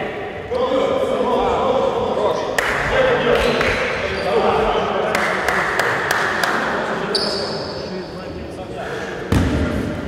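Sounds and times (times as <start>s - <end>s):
players' voices: 0.0s - 10.0s.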